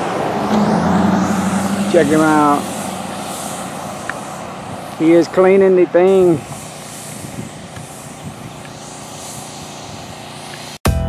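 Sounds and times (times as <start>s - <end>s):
truck driving on road: 0.0s - 10.8s.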